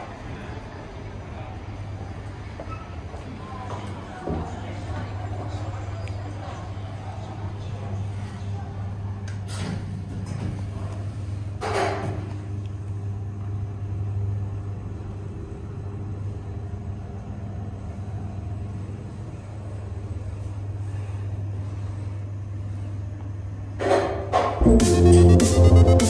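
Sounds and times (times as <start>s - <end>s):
elevator low hum: 12.2s - 23.8s, 24.6s - 26.0s.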